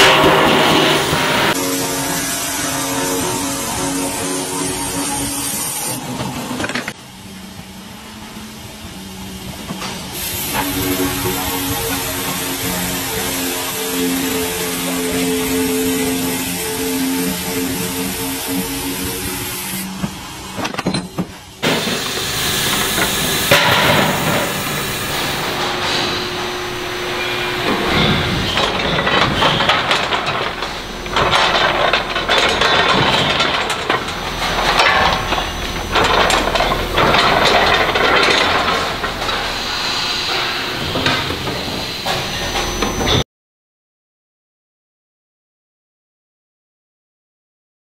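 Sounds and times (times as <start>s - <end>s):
machine hissing: 0.0s - 6.7s, 10.0s - 20.6s, 21.5s - 43.2s
machine hum: 0.0s - 20.6s, 21.4s - 43.2s
metal knocks clattering: 20.6s - 43.2s.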